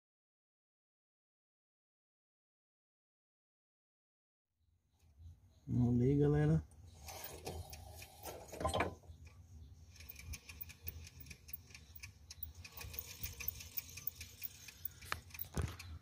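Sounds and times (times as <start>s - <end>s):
alternator ticking and clicking: 7.3s - 8.2s, 9.2s - 16.0s.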